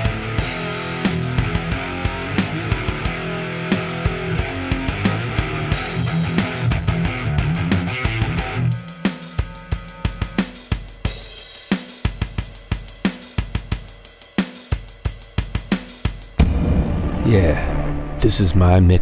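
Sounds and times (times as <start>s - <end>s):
electric guitar: 0.0s - 10.4s
drum beat: 0.0s - 18.2s
loud sudden sound: 16.4s - 19.0s.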